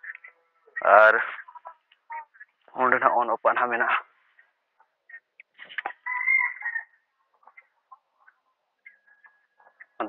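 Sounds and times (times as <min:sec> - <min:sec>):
chicken calling: 0:00.0 - 0:03.0, 0:03.8 - 0:10.0.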